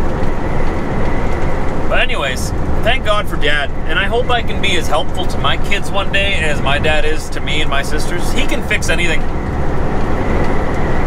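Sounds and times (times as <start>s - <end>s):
diesel engine drone: 0.0s - 11.0s
road noise: 0.0s - 11.0s.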